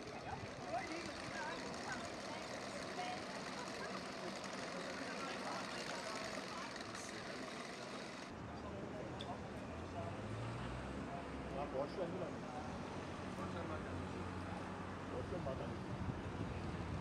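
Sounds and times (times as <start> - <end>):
traffic hum: 0.0 - 17.0.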